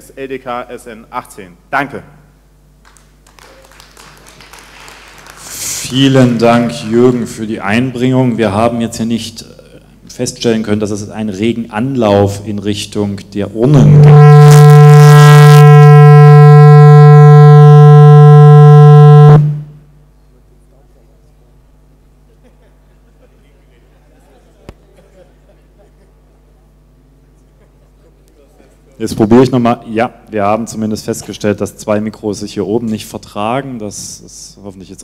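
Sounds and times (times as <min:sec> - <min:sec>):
audience applause: 0:02.9 - 0:07.1
microphone feedback howl: 0:13.6 - 0:19.9.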